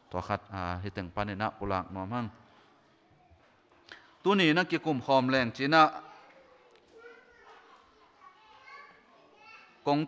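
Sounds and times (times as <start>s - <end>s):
man speaking over a microphone: 0.0s - 2.4s, 4.2s - 6.1s
faint voices in a large hall: 0.0s - 10.0s.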